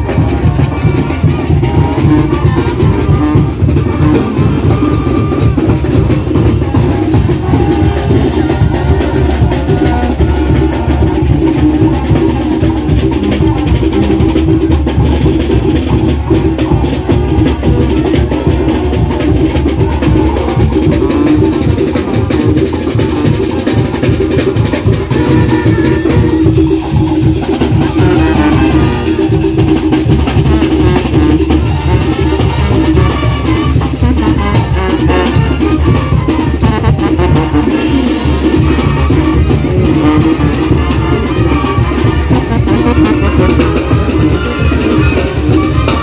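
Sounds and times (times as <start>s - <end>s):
bass drum and cymbals beat: 0.0s - 46.0s
brass band playing: 0.0s - 46.0s.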